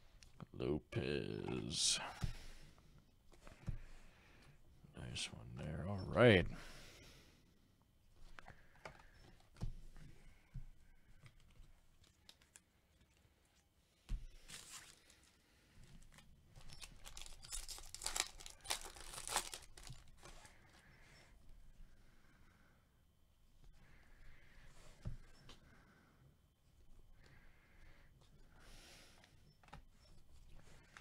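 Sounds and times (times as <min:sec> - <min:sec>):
foil wrapper tearing and crinkling: 0:16.7 - 0:20.2.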